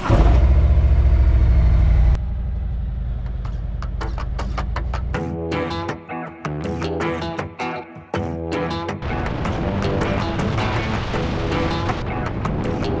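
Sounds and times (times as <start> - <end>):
motorcycle engine running: 0.0 - 5.3
guitar music: 4.0 - 13.0.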